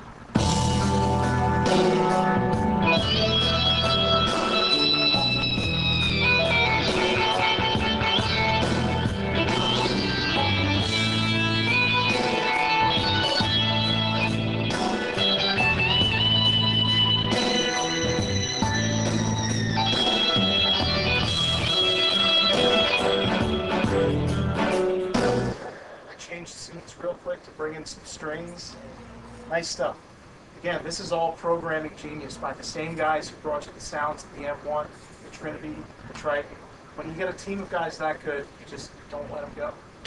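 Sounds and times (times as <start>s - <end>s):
keyboard chords and melody: 0.0s - 26.1s
rhythmic bass pattern: 0.4s - 25.7s.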